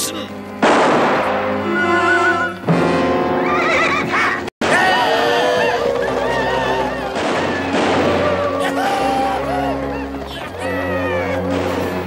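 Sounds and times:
dramatic orchestral music: 0.0s - 12.0s
loud orchestral accents: 0.6s - 12.0s
horse whinnying: 1.7s - 2.6s.

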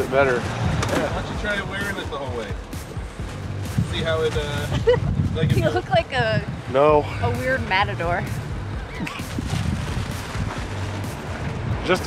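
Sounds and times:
car road noise: 0.0s - 12.0s
wind buffeting microphone: 0.0s - 12.0s.

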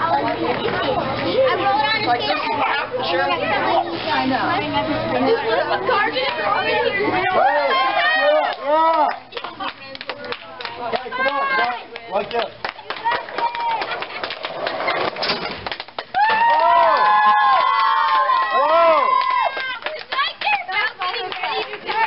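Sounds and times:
children shouting and cheering: 6.0s - 9.1s, 13.0s - 14.0s, 16.1s - 22.0s.

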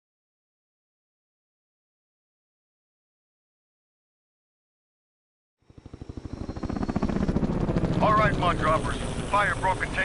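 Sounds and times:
helicopter rotor chop: 5.7s - 10.0s.

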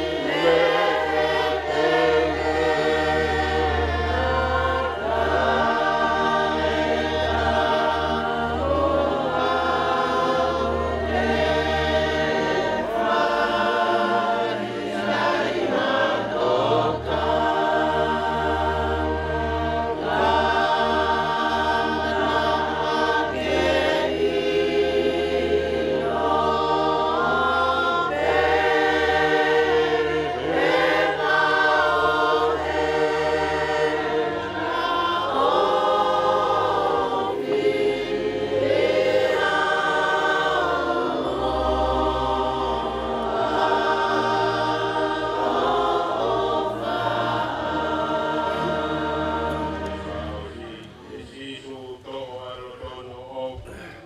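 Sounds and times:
group singing a hymn: 0.0s - 54.0s.

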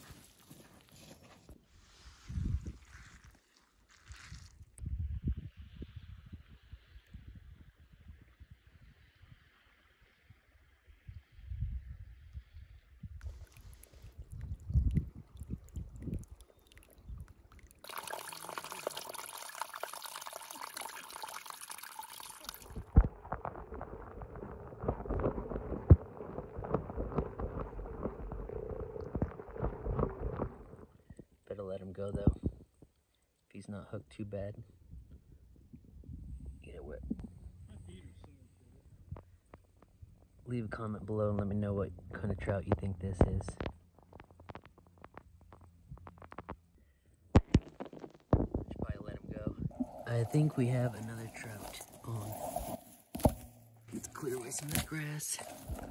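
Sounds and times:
creek trickling over rocks: 13.1s - 31.2s, 49.7s - 55.9s
shallow water splashing: 13.2s - 31.1s, 49.7s - 55.9s.

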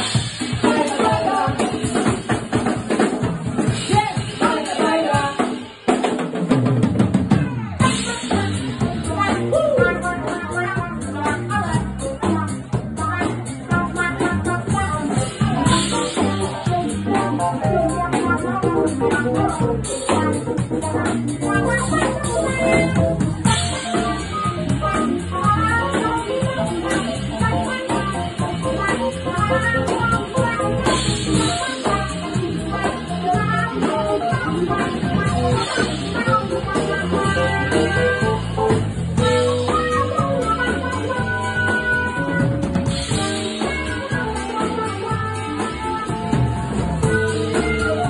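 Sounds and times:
drum kit beat: 0.0s - 48.0s
jazz band playing: 0.0s - 48.0s
low bass notes: 6.9s - 48.0s.

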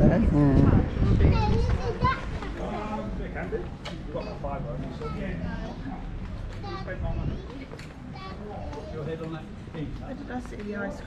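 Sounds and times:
child's high-pitched voice: 1.0s - 2.6s, 5.0s - 9.0s.

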